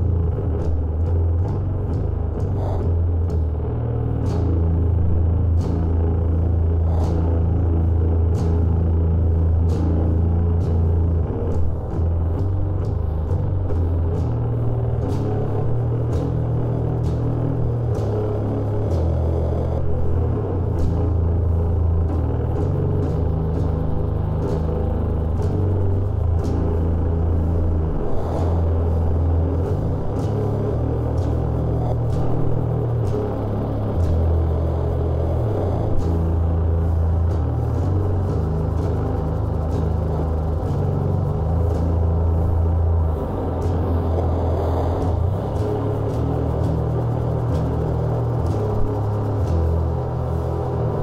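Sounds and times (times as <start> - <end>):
distorted sludge metal riff: 0.0 - 51.0.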